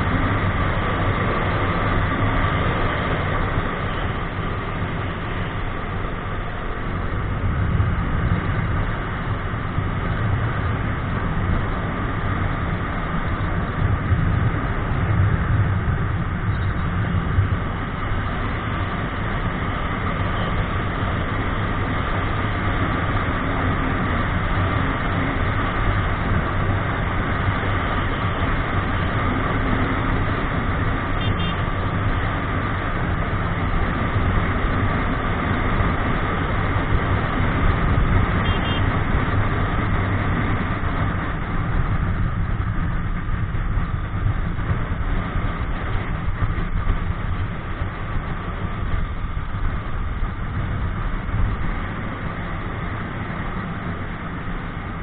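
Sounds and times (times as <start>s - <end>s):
wind and road noise: 0.0s - 55.0s.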